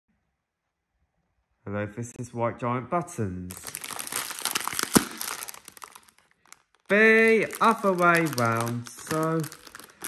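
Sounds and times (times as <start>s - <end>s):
foil pouch crinkling: 3.5s - 10.0s
pouch bursting pop: 4.4s - 5.9s.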